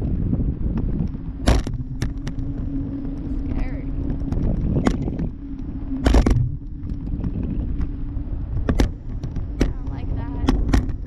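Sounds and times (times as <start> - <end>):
steady hum: 0.0 - 11.0
wind buffeting microphone: 0.0 - 11.0.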